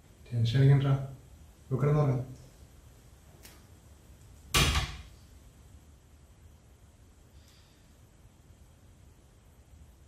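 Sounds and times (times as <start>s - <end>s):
wooden door banging shut: 4.5s - 5.1s.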